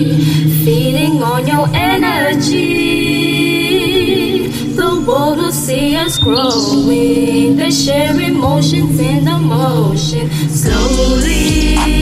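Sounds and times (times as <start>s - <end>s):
sung vocals holding a note: 0.0s - 12.0s
low bass tone: 10.6s - 12.0s.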